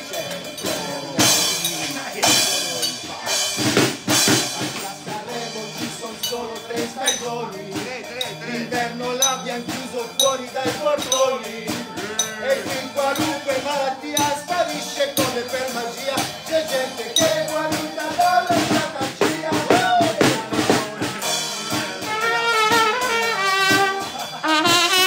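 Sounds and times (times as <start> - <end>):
clicking percussion beat: 0.0 - 25.0
man singing: 0.0 - 25.0
trumpet melody: 8.3 - 14.8, 17.1 - 25.0.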